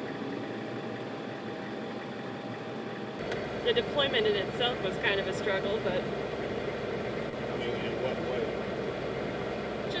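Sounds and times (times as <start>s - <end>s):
vehicle engine driving through water: 3.3s - 10.0s.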